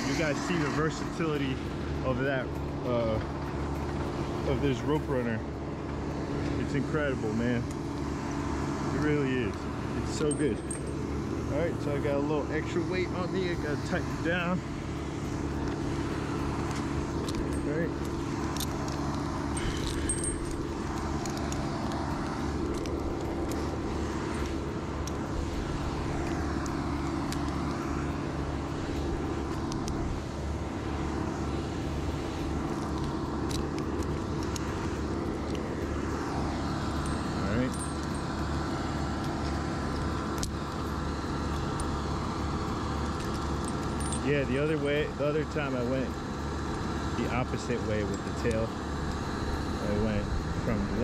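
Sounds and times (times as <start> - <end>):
light clicks and clinks: 0.0 - 30.3, 31.1 - 51.0
engine hum: 0.0 - 51.0.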